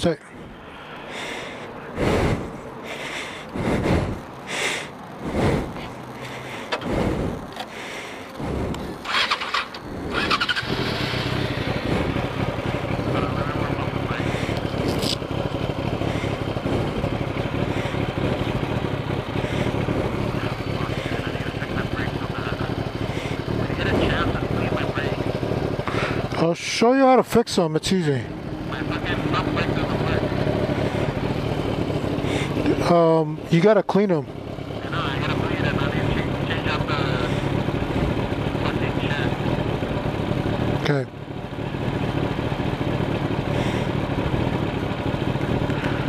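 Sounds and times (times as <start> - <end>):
motorcycle engine starting and idling: 0.3 - 46.0.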